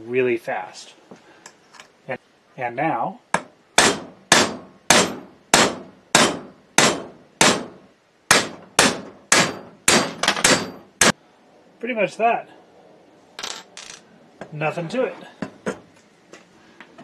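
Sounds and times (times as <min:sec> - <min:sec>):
hammer striking metal punch: 0:03.3 - 0:11.2.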